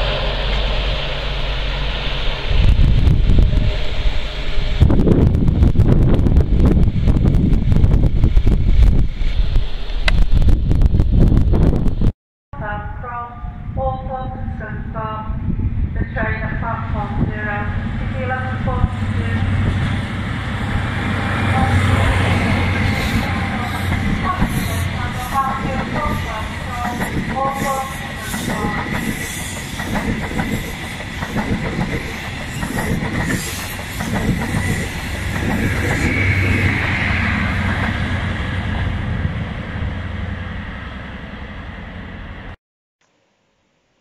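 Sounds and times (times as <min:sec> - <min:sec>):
diesel train engine drone: 0:00.0 - 0:10.1, 0:14.4 - 0:42.6
train wheels clattering over rail joints: 0:23.0 - 0:36.9.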